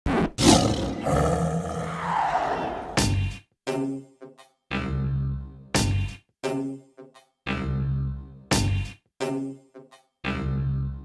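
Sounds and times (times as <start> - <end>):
animal growling roar: 0.4 - 3.0.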